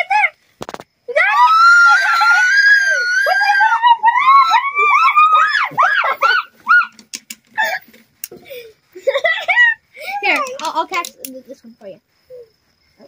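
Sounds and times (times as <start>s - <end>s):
girl screaming: 1.1s - 7.0s
girl squealing cries: 1.1s - 7.0s.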